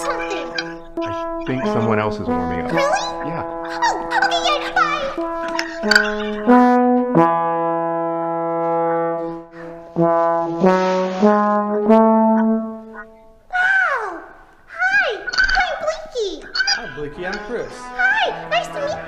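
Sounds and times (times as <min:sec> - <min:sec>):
high voice with swooping pitch: 0:00.0 - 0:06.5, 0:13.5 - 0:19.0
trombone playing sustained notes: 0:00.0 - 0:13.4, 0:16.8 - 0:19.0.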